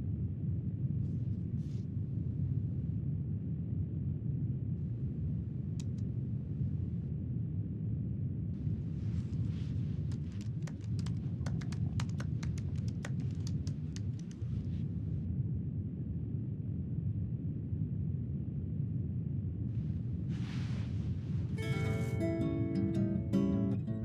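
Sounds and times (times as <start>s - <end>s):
airliner cabin drone: 0.0s - 24.0s
laptop keyboard typing: 10.0s - 14.5s.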